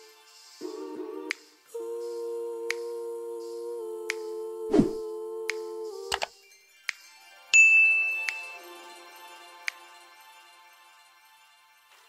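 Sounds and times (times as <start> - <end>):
short falling whoosh: 4.7 - 5.0.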